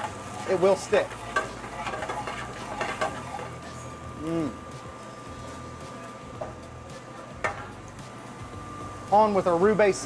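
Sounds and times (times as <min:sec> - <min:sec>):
sauce sizzling in a skillet: 0:00.0 - 0:07.1
steady background hum: 0:00.0 - 0:10.0
utensil scraping and clinking pan: 0:00.9 - 0:03.6.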